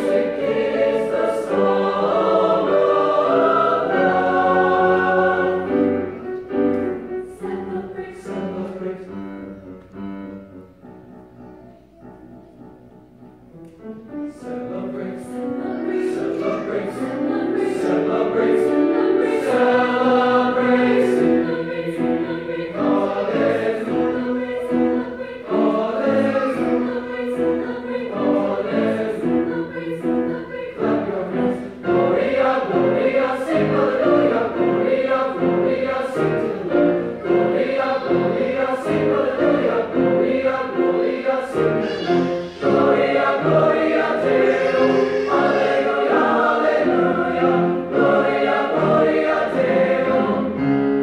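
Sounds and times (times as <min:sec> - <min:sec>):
choir singing in parts: 0:00.0 - 0:10.8, 0:13.4 - 0:51.0
piano accompaniment: 0:00.0 - 0:51.0.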